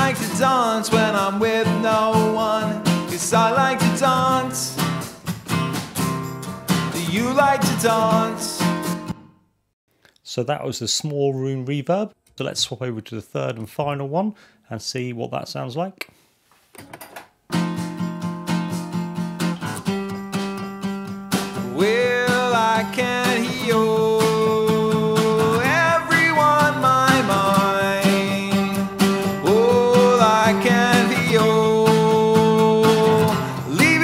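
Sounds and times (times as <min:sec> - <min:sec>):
person singing: 0:00.0 - 0:05.0, 0:06.8 - 0:09.0, 0:21.5 - 0:34.0
strummed acoustic guitar: 0:00.0 - 0:09.3, 0:17.5 - 0:34.0.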